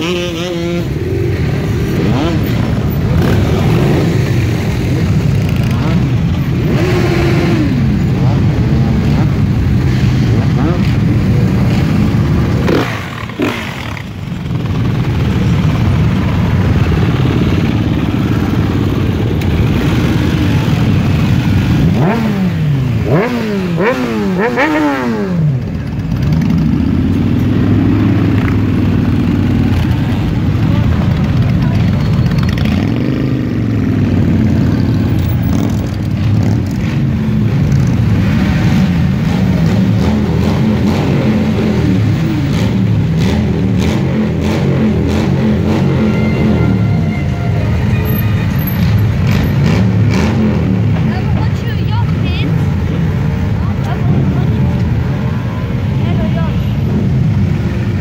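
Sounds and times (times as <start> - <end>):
motorcycle engines revving: 0.0 - 58.0
motorcycles riding past: 0.0 - 58.0.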